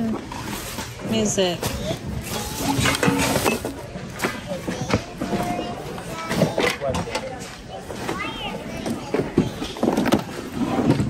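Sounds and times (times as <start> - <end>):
plastic bags rustling: 0.0 - 5.8
objects knocking and clattering: 0.0 - 8.2, 8.8 - 11.0.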